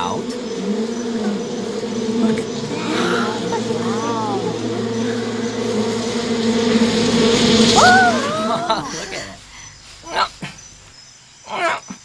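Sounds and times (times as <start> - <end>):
bees buzzing: 0.0 - 11.1.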